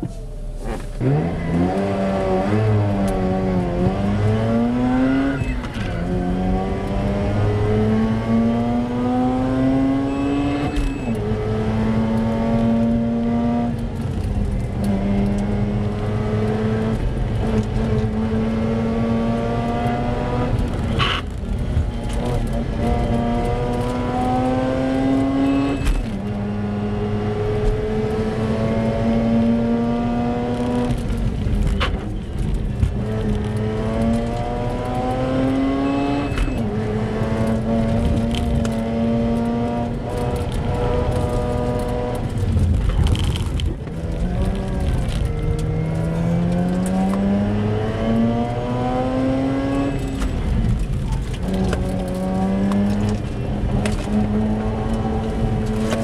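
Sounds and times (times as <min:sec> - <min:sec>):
car engine accelerating hard: 0:00.0 - 0:56.0.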